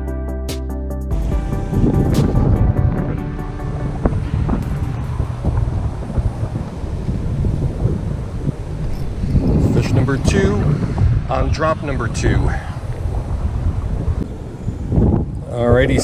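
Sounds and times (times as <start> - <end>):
background music: 0.0 - 6.6
wind buffeting microphone: 1.1 - 16.0.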